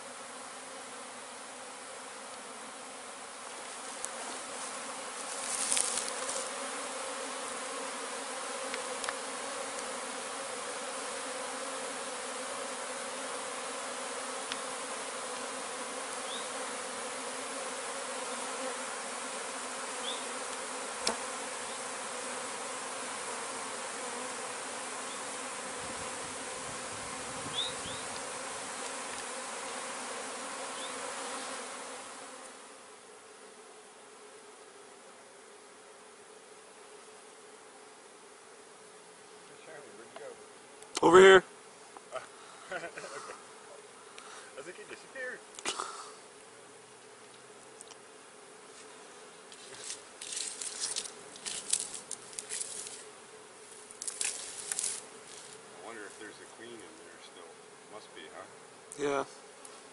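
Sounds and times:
bees buzzing: 0.0s - 59.9s.

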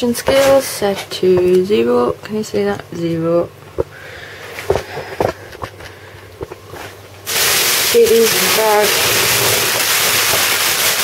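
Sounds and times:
loud steady rushing hiss: 7.2s - 11.0s.

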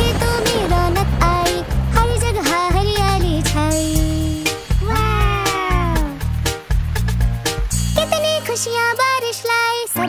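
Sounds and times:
children's song backing track: 0.0s - 10.0s
meow-like call: 4.8s - 6.2s.

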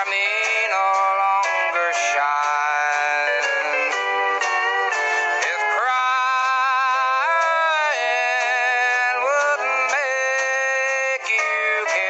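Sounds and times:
steel guitar gliding notes: 0.0s - 12.0s.

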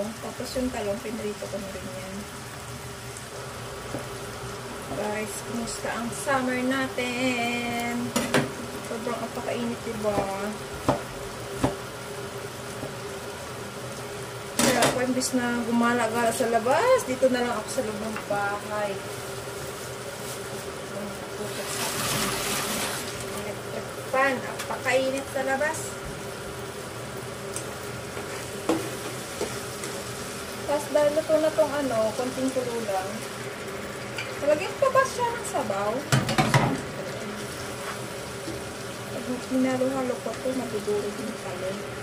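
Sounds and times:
pork sizzling in a frying pan: 0.0s - 42.0s.

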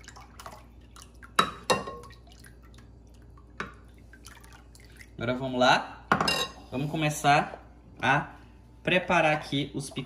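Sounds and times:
liquid pouring and dripping: 0.0s - 5.2s.

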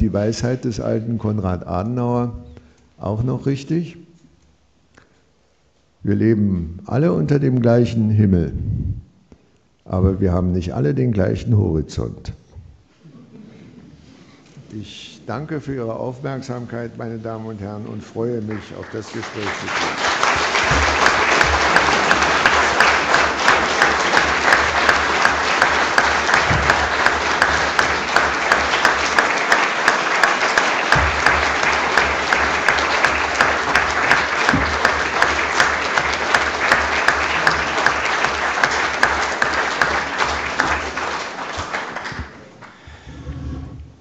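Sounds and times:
audience applauding: 18.3s - 42.8s.

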